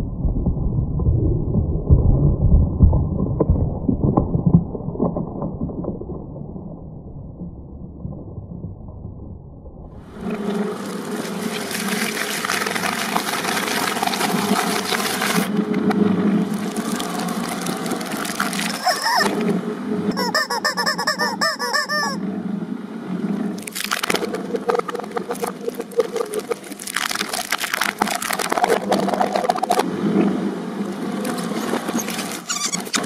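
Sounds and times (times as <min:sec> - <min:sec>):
rapid wavering squeals: 0:18.7 - 0:19.3, 0:20.1 - 0:22.2, 0:31.6 - 0:33.0.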